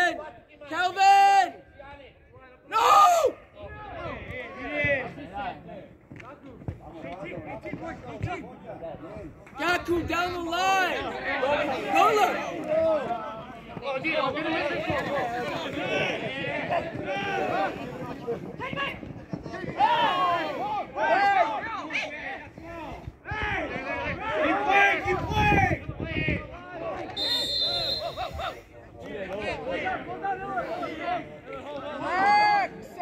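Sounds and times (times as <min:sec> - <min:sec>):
players calling out: 0:09.6 - 0:22.5, 0:26.8 - 0:33.0
referee's whistle blast: 0:27.1 - 0:28.4.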